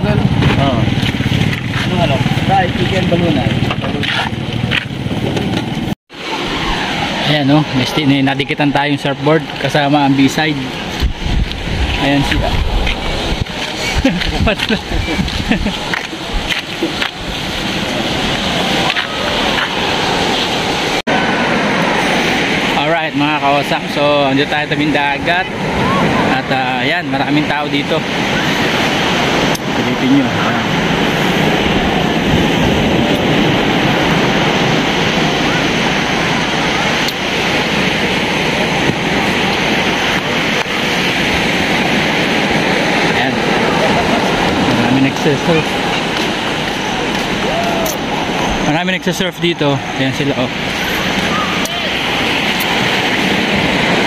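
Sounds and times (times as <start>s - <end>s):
surf rushing on beach: 0.0s - 54.0s
wind rumbling on microphone: 0.0s - 54.0s.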